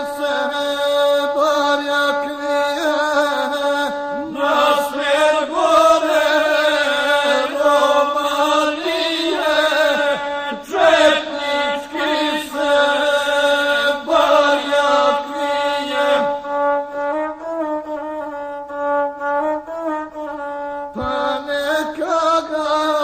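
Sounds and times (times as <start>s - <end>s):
person chanting: 0.0s - 18.8s, 19.4s - 23.0s
bowed fiddle: 0.0s - 23.0s.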